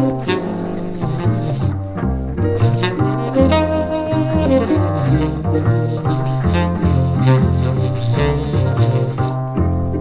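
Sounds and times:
double bass playing low figure: 0.0s - 10.0s
sustained jazz chords: 0.0s - 10.0s.

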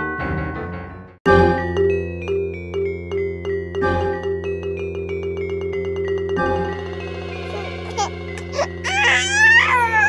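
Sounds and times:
background music: 0.0s - 10.0s
baby crying: 7.4s - 10.0s.

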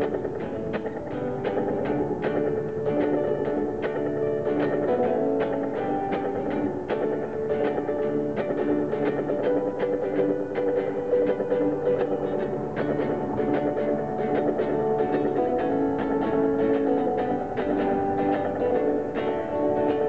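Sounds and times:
electric guitar strumming: 0.0s - 20.0s.

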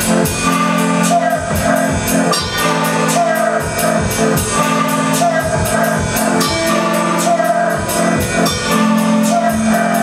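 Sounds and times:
drum kit beat: 0.0s - 10.0s.

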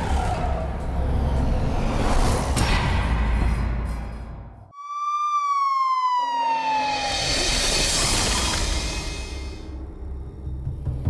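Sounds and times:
siren wailing downward: 4.7s - 9.6s.

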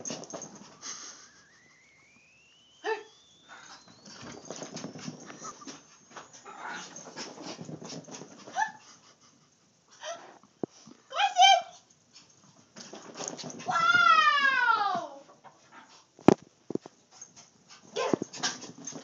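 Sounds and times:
dogs scrambling: 0.0s - 1.7s, 3.4s - 9.5s, 11.8s - 14.2s, 15.4s - 19.0s
dog whining: 0.0s - 7.6s
dog yelping: 2.8s - 7.6s.

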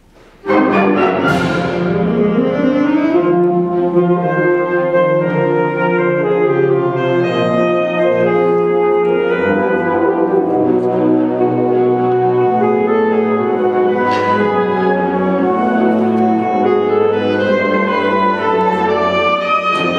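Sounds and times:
concert wind band playing: 0.3s - 19.9s.

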